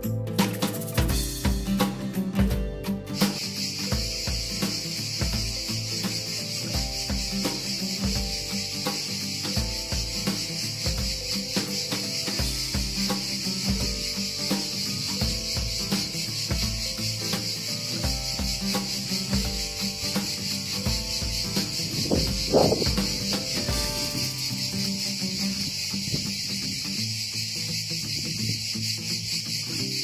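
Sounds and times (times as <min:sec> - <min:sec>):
background music with bass beat: 0:00.0 - 0:30.0
chorus of insects: 0:00.0 - 0:30.0.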